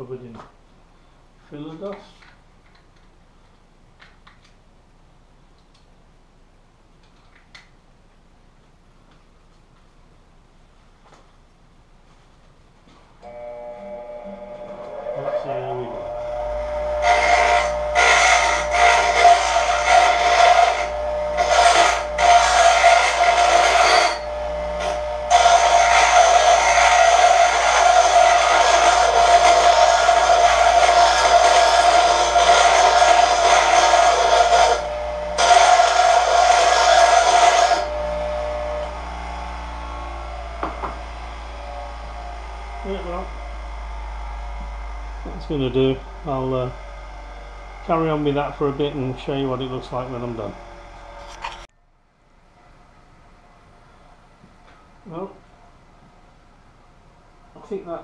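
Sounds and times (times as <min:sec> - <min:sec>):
bench grinder spinning: 0:13.3 - 0:51.6
steel grinding on wheel: 0:14.4 - 0:51.7.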